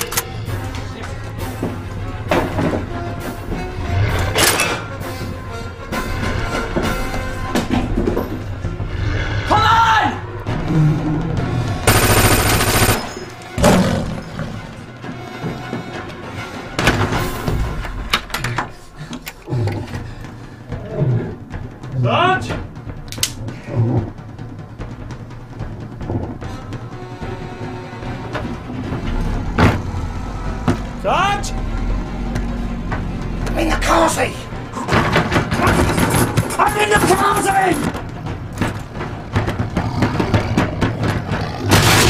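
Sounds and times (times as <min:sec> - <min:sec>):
film music: 0:00.0 - 0:42.0
automatic gunfire: 0:11.9 - 0:13.3.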